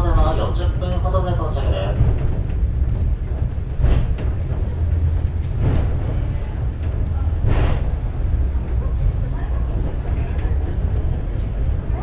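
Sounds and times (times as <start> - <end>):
funicular car rumble: 0.0 - 12.0.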